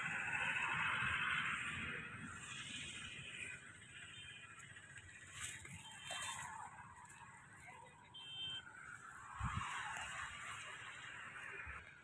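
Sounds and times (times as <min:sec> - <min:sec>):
high steady beep: 0:08.1 - 0:08.6.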